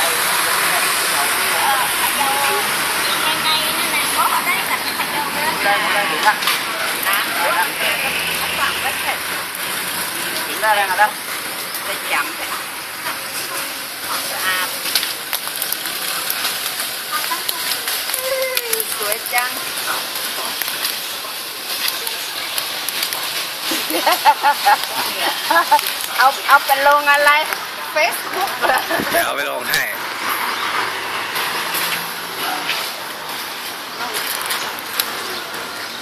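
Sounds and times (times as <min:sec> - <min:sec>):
leaves and twigs rustling: 0:01.1 - 0:36.0.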